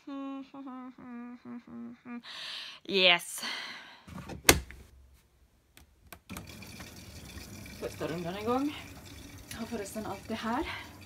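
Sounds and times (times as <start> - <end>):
detergent drawer shutting: 4.1 - 4.8
water running into machine: 6.3 - 11.0.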